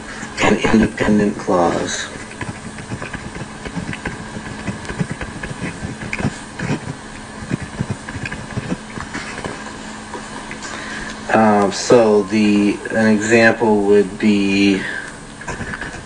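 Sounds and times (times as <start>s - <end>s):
faint low hum: 0.0s - 16.0s
steady hiss: 0.0s - 16.0s
pen scratching on paper: 0.4s - 9.6s, 15.4s - 16.0s.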